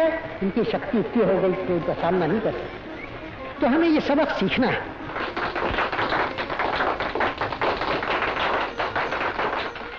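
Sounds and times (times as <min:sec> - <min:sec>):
crowd applauding: 0:05.1 - 0:09.9.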